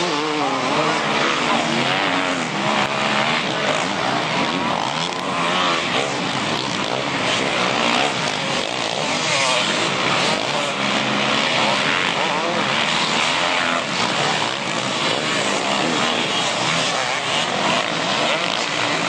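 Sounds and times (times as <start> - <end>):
motocross bike engines revving: 0.0 - 19.0.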